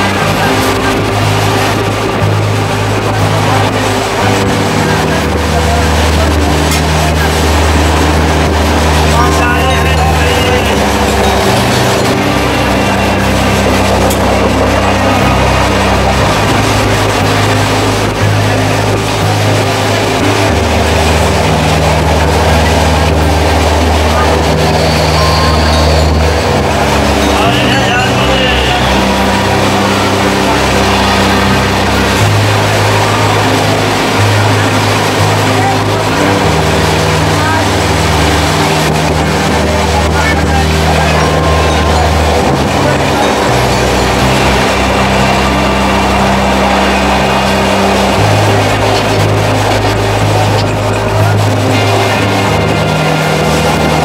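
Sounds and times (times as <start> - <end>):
low sustained notes: 0.0 - 54.0
music: 0.0 - 54.0
train running noise: 0.0 - 54.0
voices: 0.0 - 54.0.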